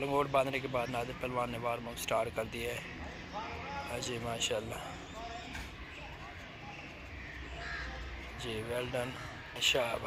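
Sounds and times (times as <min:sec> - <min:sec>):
crow cawing faintly: 0:05.5 - 0:10.0.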